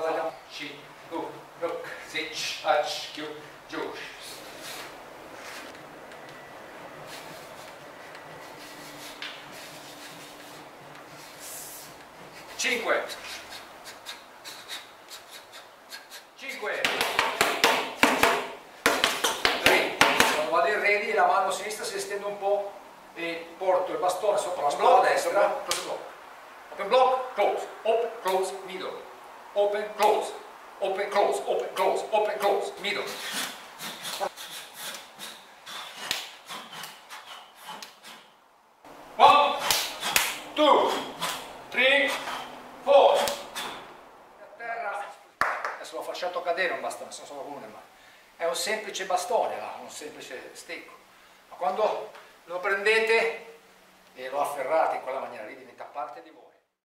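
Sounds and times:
man calling out: 0:16.0 - 0:16.9, 0:23.2 - 0:26.0, 0:39.2 - 0:39.7, 0:40.5 - 0:43.6
sharp cracks or swishes: 0:33.2 - 0:38.3, 0:39.5 - 0:43.9
sticks clacking: 0:39.5 - 0:43.9.

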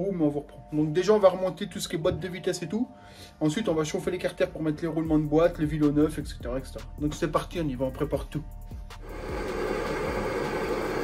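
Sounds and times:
blowtorch hissing: 0:09.0 - 0:11.0.

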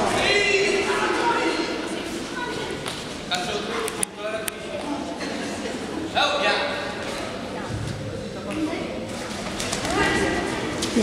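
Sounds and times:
voices shouting in echoing hall: 0:00.0 - 0:04.0.

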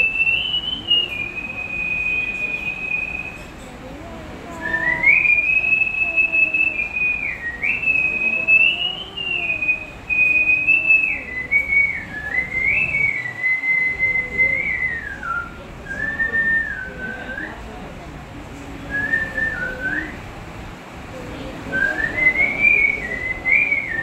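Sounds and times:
man whistling a melody: 0:00.0 - 0:03.6, 0:04.6 - 0:17.6, 0:18.9 - 0:20.2, 0:21.8 - 0:24.0.

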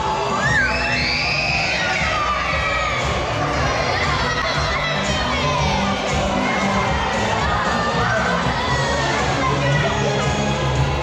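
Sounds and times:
crowd shouting and cheering: 0:00.0 - 0:11.0
party music: 0:00.0 - 0:11.0.

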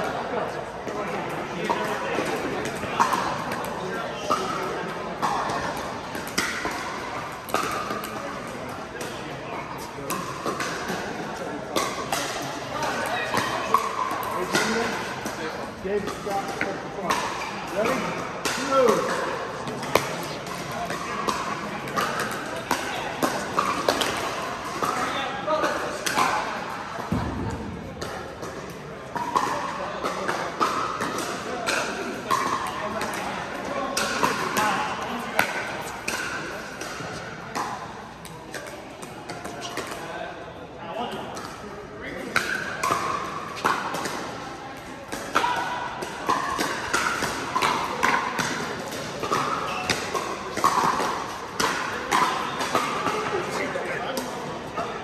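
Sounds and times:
paddles hitting plastic balls: 0:00.9 - 0:40.1, 0:42.2 - 0:55.0.

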